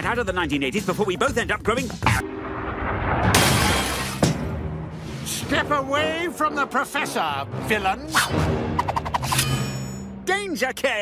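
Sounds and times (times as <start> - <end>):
background music: 0.0 - 11.0
cartoon glass shattering: 3.2 - 4.5, 9.2 - 10.0.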